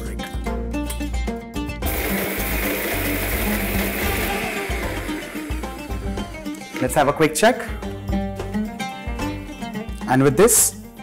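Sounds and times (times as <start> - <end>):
mixer grinder grinding spices: 1.9 - 6.8.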